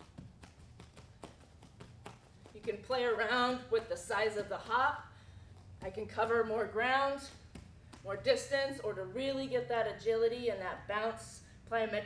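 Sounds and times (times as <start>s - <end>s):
bare feet hopping on foam mats: 0.0s - 8.5s.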